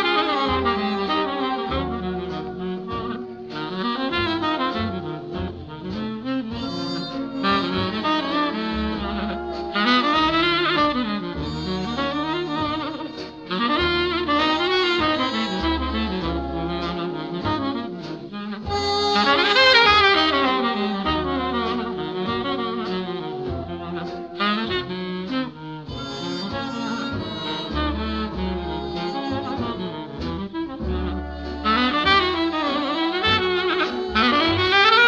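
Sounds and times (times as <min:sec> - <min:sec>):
low bass notes: 0:00.0 - 0:35.0
tenor saxophone jazz melody: 0:00.0 - 0:35.0.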